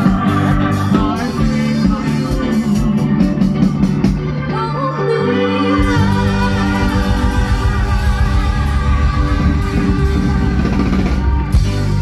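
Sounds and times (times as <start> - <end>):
person singing: 0.0 - 3.7, 4.4 - 11.1
live band playing dance song: 0.0 - 12.0
drums beating: 5.8 - 12.0.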